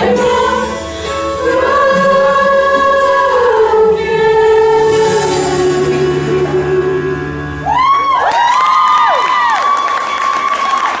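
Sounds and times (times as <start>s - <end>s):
high whoops: 7.6s - 11.0s
audience cheering and clapping: 7.7s - 11.0s.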